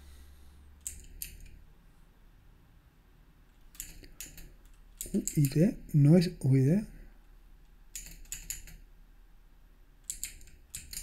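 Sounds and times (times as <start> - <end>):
computer keyboard key clicks: 0.8 - 1.5, 3.7 - 5.6, 7.9 - 8.8, 10.1 - 11.0.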